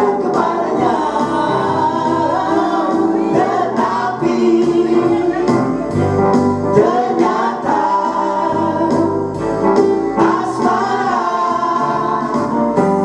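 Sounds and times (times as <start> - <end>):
accompaniment with steady beat: 0.0 - 13.0
mixed vocal group singing: 0.0 - 13.0.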